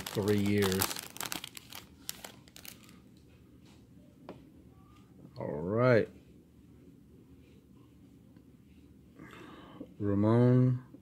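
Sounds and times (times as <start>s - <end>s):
foil wrapper crinkling and tearing: 0.0s - 3.0s.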